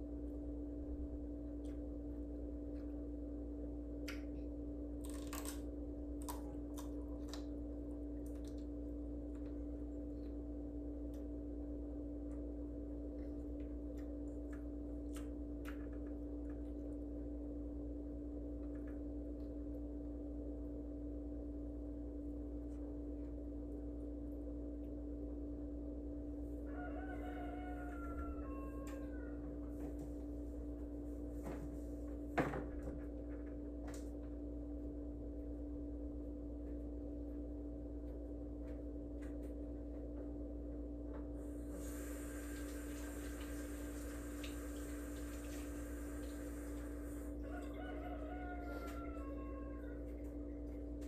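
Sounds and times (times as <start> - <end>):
steady hum: 0.0 - 51.0.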